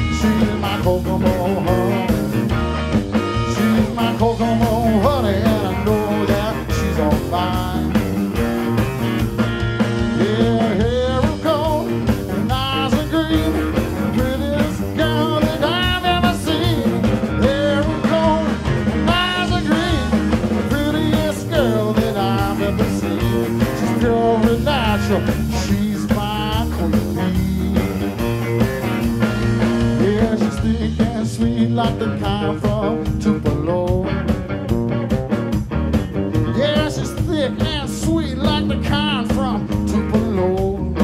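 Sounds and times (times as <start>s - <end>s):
drum kit: 0.0s - 41.0s
electric bass: 0.0s - 41.0s
electric guitar with bent notes: 0.0s - 41.0s.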